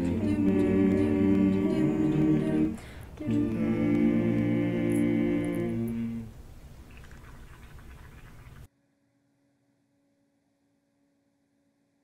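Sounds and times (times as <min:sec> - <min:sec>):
a cappella group holding chord: 0:00.0 - 0:06.4
faint room noise: 0:00.0 - 0:09.3.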